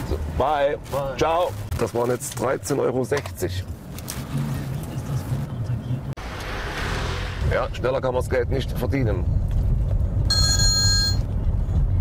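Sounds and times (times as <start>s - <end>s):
car engine hum: 3.4s - 12.0s
car rushing noise: 6.1s - 10.2s.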